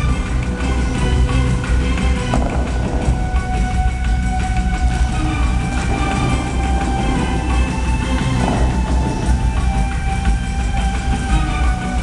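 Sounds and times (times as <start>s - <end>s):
music over loudspeakers: 0.0s - 12.0s
water jets rushing: 0.0s - 12.0s.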